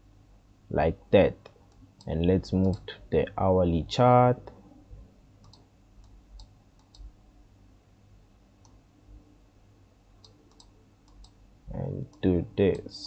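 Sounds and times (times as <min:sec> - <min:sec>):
low steady hum: 0:00.0 - 0:13.0
person speaking: 0:00.7 - 0:04.6, 0:11.7 - 0:13.0
computer mouse clicks: 0:05.4 - 0:07.1, 0:08.6 - 0:08.8, 0:10.2 - 0:11.4.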